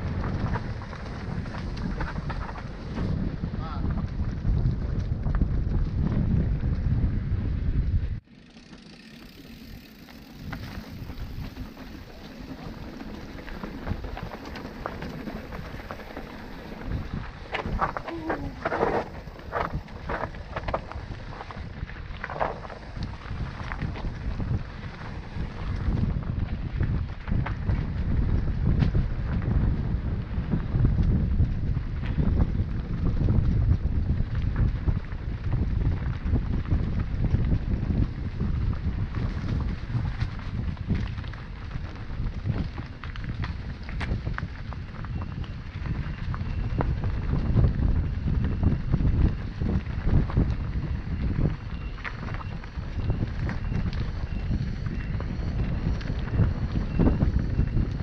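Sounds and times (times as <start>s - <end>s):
bike rattling and knocking: 0.0s - 58.0s
wind buffeting microphone: 0.0s - 58.0s
tyre rumble on dirt: 8.4s - 58.0s.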